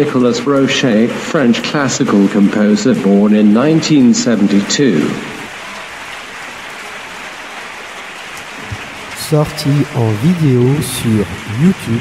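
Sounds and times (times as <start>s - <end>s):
steady hiss-like noise: 0.0s - 12.0s.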